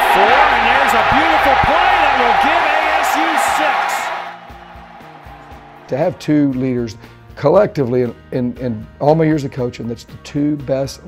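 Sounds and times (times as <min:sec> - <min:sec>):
stadium broadcast noise: 0:00.0 - 0:06.6
soft background music: 0:04.4 - 0:11.0.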